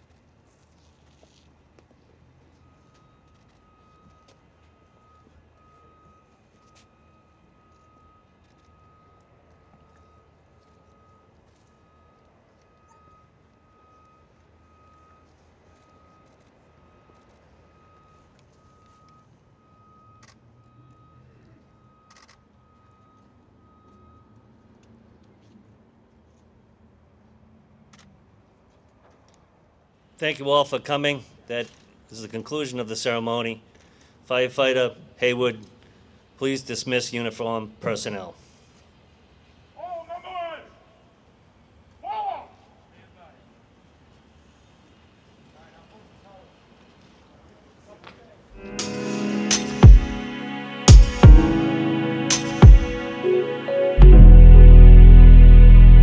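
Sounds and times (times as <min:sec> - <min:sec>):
faint high beep: 0:02.6 - 0:24.5.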